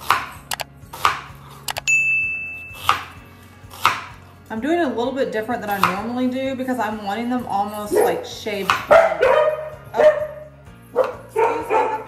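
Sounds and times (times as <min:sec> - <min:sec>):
button clicks: 0:01.7 - 0:01.9
high bell ding: 0:01.9 - 0:02.9.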